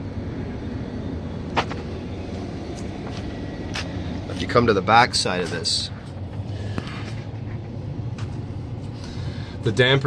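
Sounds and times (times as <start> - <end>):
hvac unit rumbling: 0.0 - 10.0.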